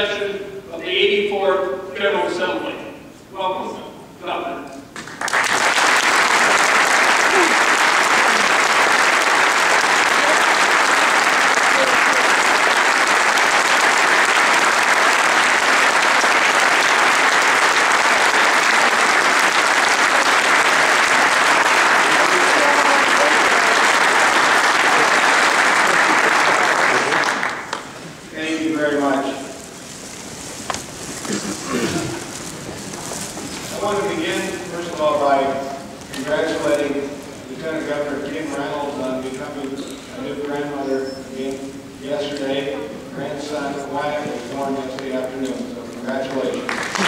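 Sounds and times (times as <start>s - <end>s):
large audience applauding: 5.0s - 28.2s, 46.3s - 47.0s.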